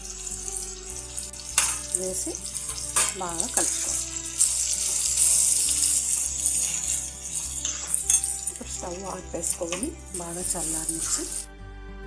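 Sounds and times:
oil sizzling in a frying pan: 0.0 - 11.5
spoon stirring: 0.0 - 11.5
background music: 0.0 - 12.0.

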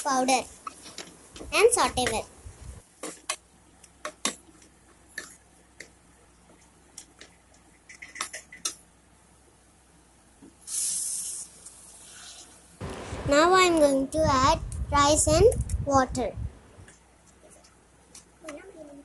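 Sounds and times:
short hiss: 10.6 - 13.3.

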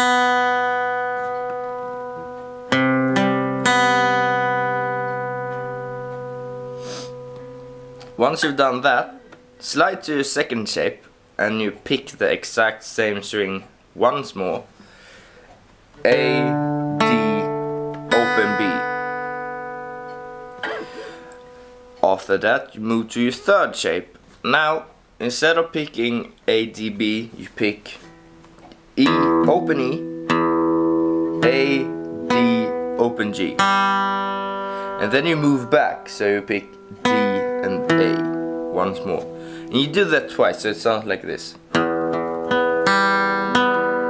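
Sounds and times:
acoustic guitar notes picked: 0.0 - 12.0, 16.0 - 25.0, 25.6 - 44.0.

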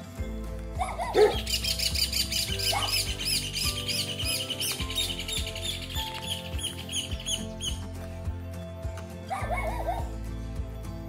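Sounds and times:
background music: 0.0 - 11.0
songbird singing rapid notes: 0.8 - 8.0.

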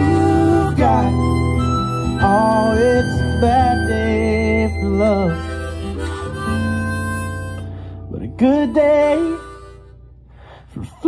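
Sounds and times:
harmonica playing held notes: 0.0 - 10.7
acoustic guitar accompaniment: 0.0 - 11.0.

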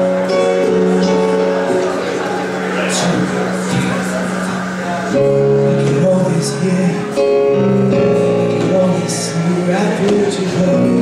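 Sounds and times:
digital piano chords: 0.0 - 11.0
strummed acoustic guitar: 0.0 - 11.0.

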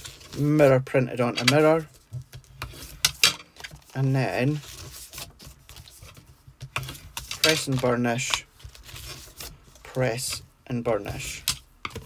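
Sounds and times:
cardstock rustling and crackling: 0.0 - 12.0.

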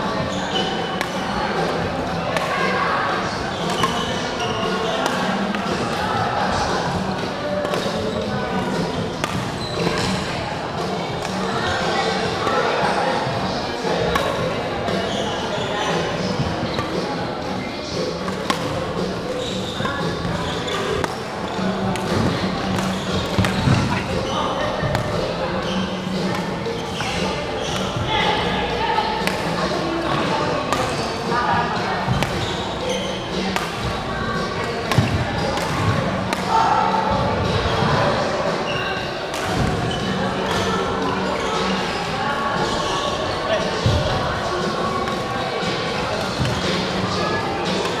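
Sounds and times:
echoing chatter: 0.0 - 48.0
rackets striking shuttlecocks: 3.6 - 6.0, 7.6 - 8.0, 8.6 - 10.2, 18.2 - 24.1, 32.1 - 34.0, 34.7 - 36.5.

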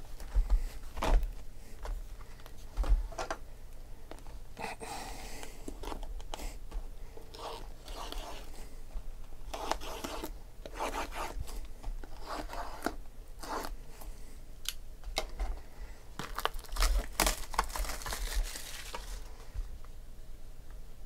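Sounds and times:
cardboard tearing and crinkling: 16.2 - 19.3.

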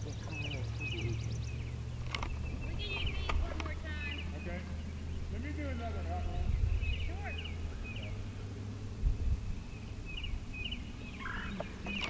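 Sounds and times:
birds chirping: 0.0 - 12.0
faint distant voices: 0.0 - 12.0
low steady rumble: 0.0 - 12.0
sharp clicks: 1.9 - 3.8.

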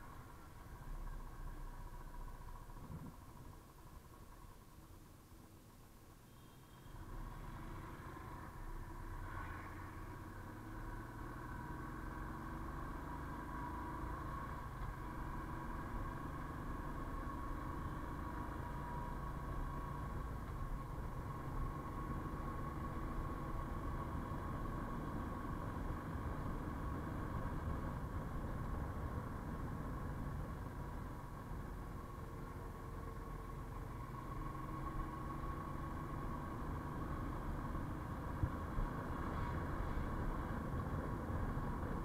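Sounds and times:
road and wind noise: 0.0 - 42.0.

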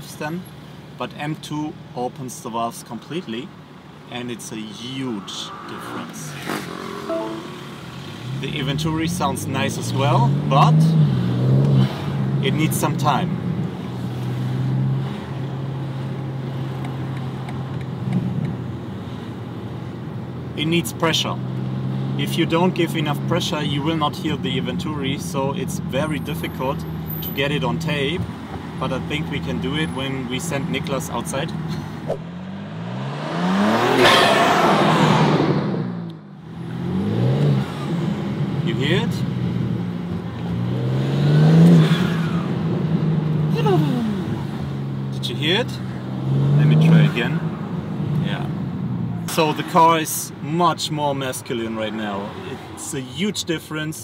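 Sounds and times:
car engine accelerating hard: 32.1 - 48.5.

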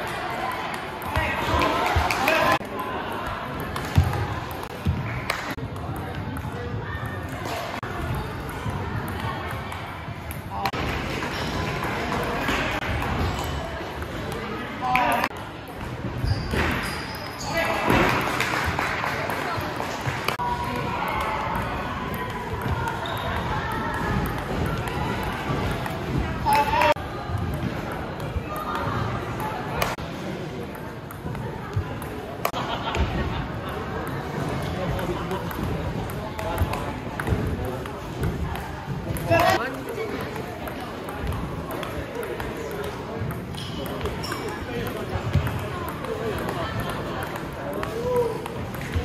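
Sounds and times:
murmur of voices: 0.0 - 49.0.

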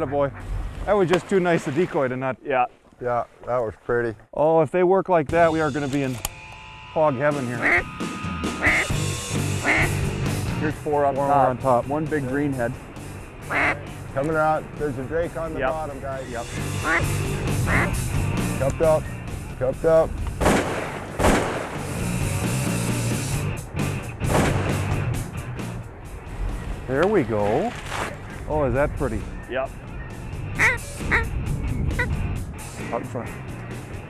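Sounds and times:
background music: 5.3 - 34.0
duck call quacks: 7.6 - 10.1, 13.5 - 13.9, 16.6 - 18.0, 30.6 - 31.3
shotgun shots: 20.4 - 22.0, 24.2 - 24.9.

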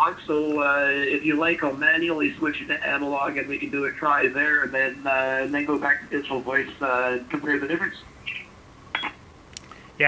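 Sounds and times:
faint hiss: 0.0 - 10.0
short electronic beeps: 9.0 - 9.2.

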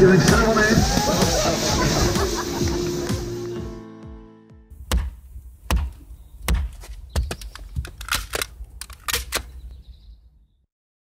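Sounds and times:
sharp clicks and knocks: 4.9 - 9.6.

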